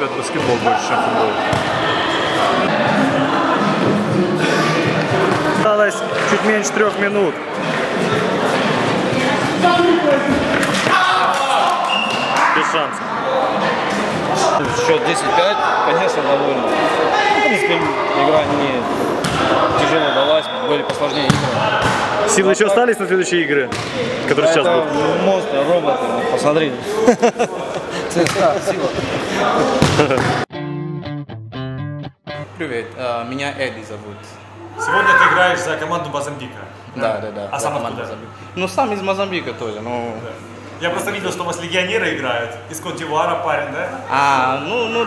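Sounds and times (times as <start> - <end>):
voices echoing in hall: 0.0 - 30.5, 32.4 - 45.0
players shouting in sports hall: 8.2 - 22.6, 34.5 - 35.7
ball thuds: 19.2 - 19.5, 20.9 - 22.0
electric guitar music: 30.5 - 32.6.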